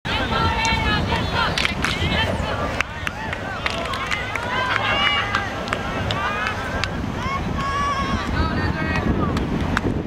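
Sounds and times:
people shouting and cheering: 0.1s - 9.5s
wind rumble on microphone: 0.1s - 10.0s.

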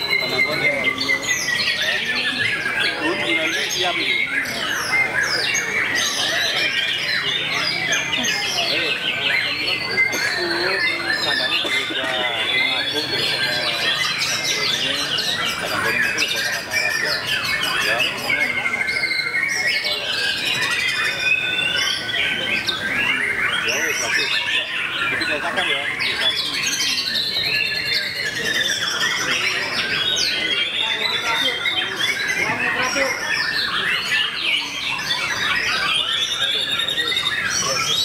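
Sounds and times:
faint voices: 0.0s - 38.0s
songbirds whistling and trilling: 0.0s - 38.0s.

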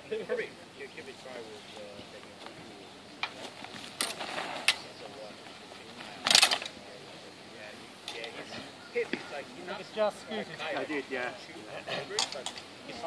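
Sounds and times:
voices: 0.0s - 13.0s.

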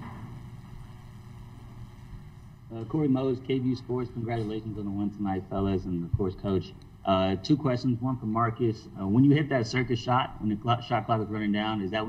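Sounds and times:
microphone hum and hiss: 0.0s - 12.0s.

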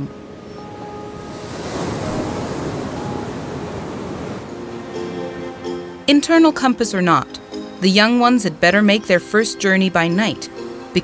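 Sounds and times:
soft background music: 0.0s - 11.0s
wave breaking on sand: 1.2s - 4.6s.

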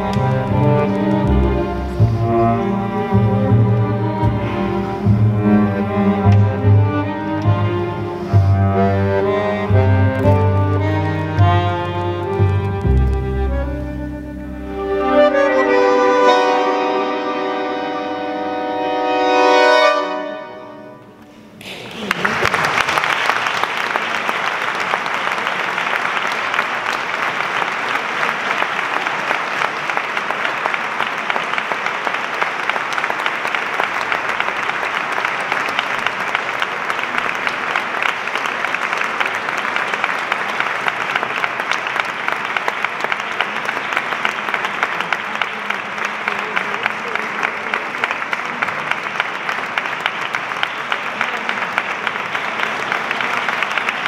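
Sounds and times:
music chord: 12.8s - 21.3s
audience applause: 21.6s - 54.0s.

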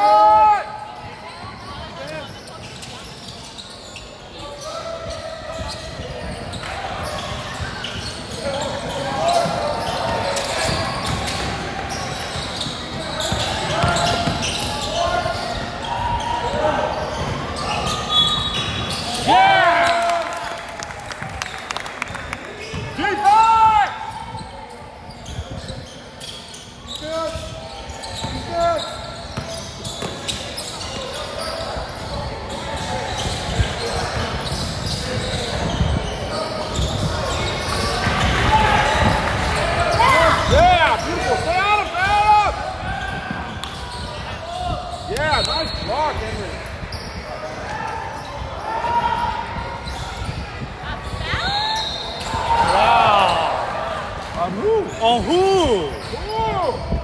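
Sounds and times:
shoe squeals: 0.0s - 20.2s, 22.6s - 57.0s.

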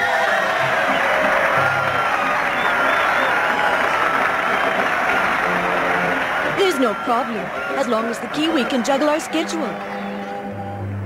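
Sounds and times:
crowd cheering and applauding: 0.0s - 10.9s
soundtrack music: 0.1s - 11.0s.

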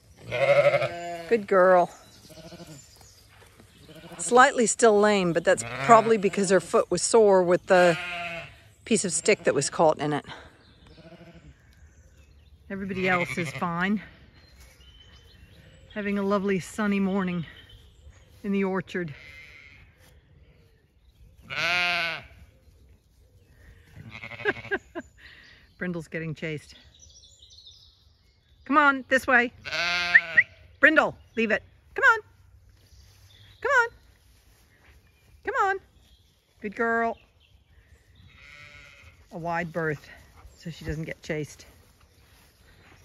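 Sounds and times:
sheep bleating: 0.2s - 1.5s, 2.2s - 2.8s, 3.8s - 4.6s, 5.6s - 6.6s, 7.8s - 8.6s, 11.0s - 11.5s, 12.8s - 13.8s, 19.0s - 19.8s, 21.5s - 22.4s, 24.0s - 24.8s, 29.6s - 30.6s, 38.3s - 39.5s.

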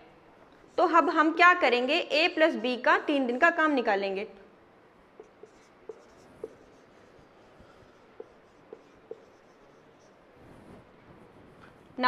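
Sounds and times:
marker writing on whiteboard: 5.1s - 11.0s
squeaky marker strokes: 5.2s - 10.9s.

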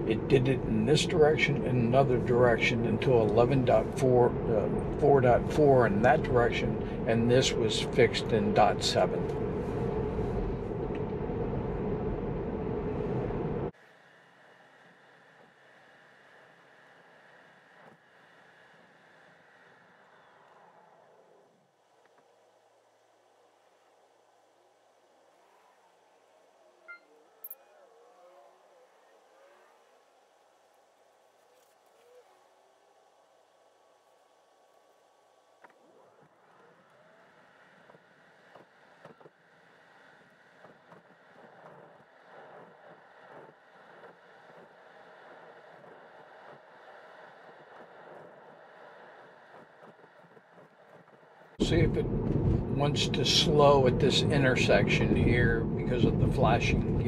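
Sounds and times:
tyre and road noise: 0.0s - 57.0s.

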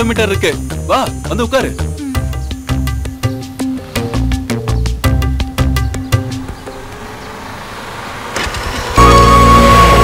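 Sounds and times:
low motor and road noise: 1.8s - 10.0s
loud blare of held tones: 9.0s - 10.0s.

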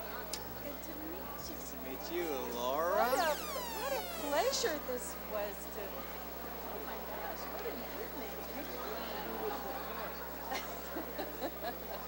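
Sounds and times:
people chatting: 2.2s - 5.5s.

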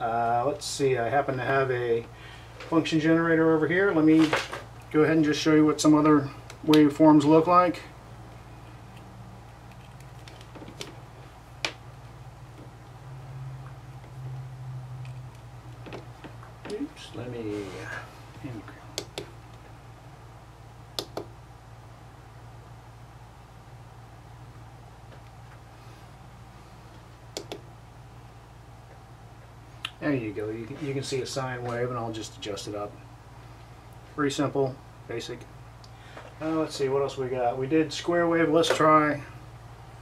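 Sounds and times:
low hum: 0.0s - 38.4s
clip test leads clicking: 19.0s - 19.6s, 21.0s - 21.3s, 27.3s - 27.6s.

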